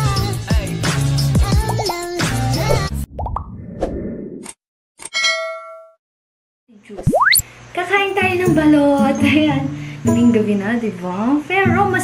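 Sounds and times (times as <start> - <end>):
bell ding: 5.1 - 6.0
short sound-effect pops: 7.0 - 7.4.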